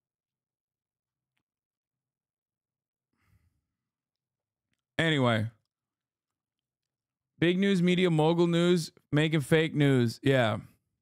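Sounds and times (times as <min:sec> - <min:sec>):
faint sighing breath: 0:03.1 - 0:03.7.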